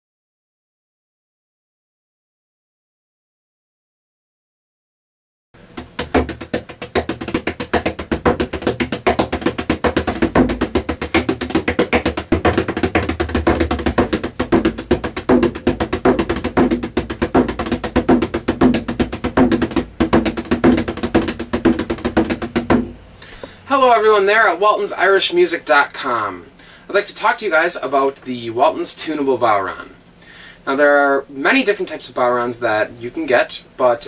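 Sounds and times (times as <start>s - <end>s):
frame drum played fast with tipper: 5.6s - 23.0s.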